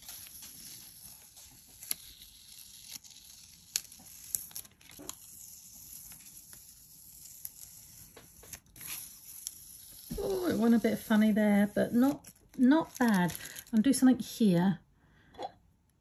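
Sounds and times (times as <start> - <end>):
tape peeling off paper: 0.0 - 13.8.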